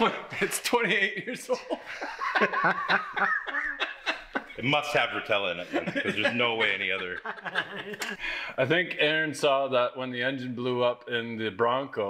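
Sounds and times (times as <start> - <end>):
man laughing: 1.3 - 8.3.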